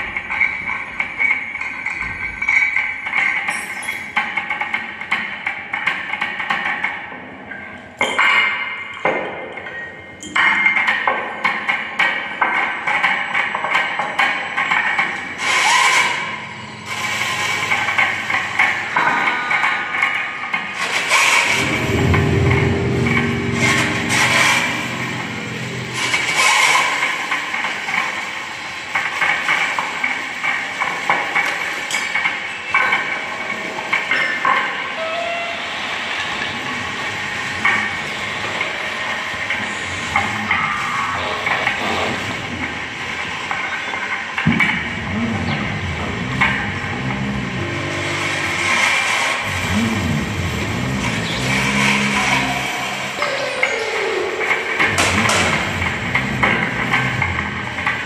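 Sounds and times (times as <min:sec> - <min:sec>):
high metallic ringing: 0:00.0 - 0:04.4, 0:21.4 - 0:27.4
low wavering drone: 0:21.4 - 0:27.2, 0:45.2 - 0:58.0.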